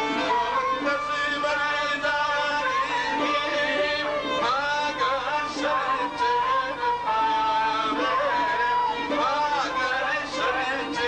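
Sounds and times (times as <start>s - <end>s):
man singing: 0.0s - 11.0s.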